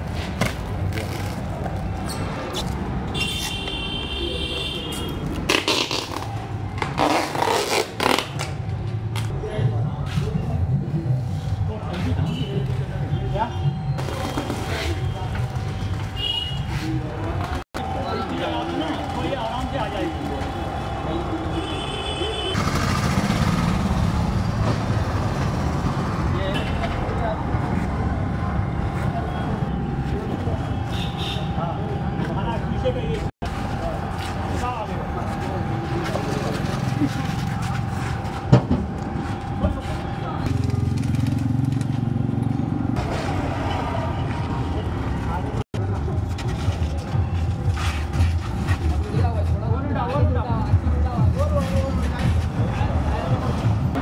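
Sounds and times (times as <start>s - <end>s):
packing tape pulled off roll: 5.5s - 8.6s
people talking: 9.3s - 22.6s, 26.3s - 38.3s, 39.2s - 40.7s, 48.7s - 54.0s.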